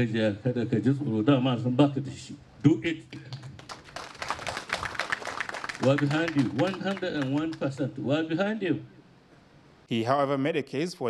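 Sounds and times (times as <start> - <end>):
people clapping: 3.2 - 8.1.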